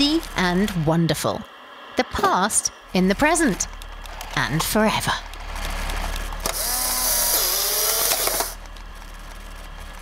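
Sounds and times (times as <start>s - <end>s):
small electric motor whirring: 6.4s - 8.6s.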